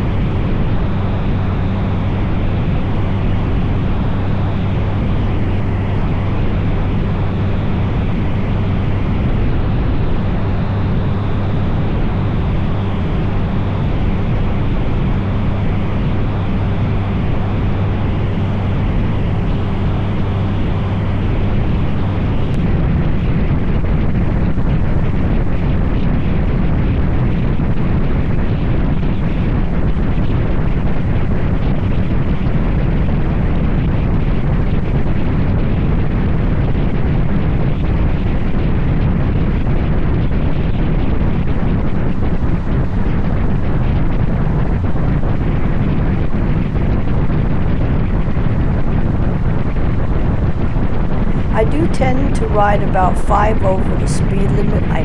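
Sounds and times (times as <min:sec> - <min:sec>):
wind buffeting microphone: 0:00.0 - 0:53.6.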